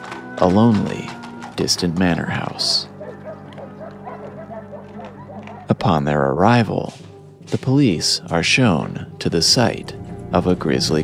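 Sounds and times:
background music with low drone: 0:00.0 - 0:11.0.

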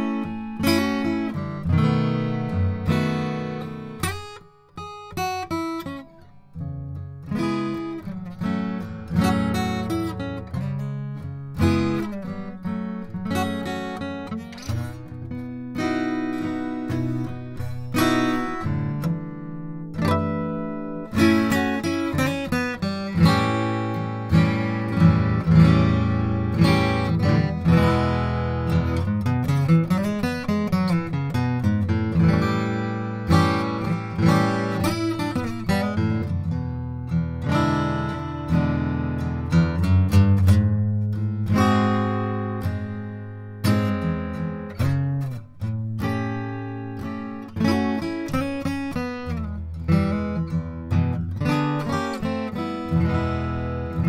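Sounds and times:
acoustic guitar picked notes: 0:00.0 - 0:54.0.

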